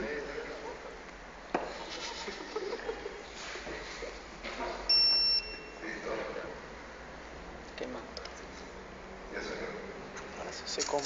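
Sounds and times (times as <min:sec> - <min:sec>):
short high-pitched beep: 0:04.9 - 0:05.8.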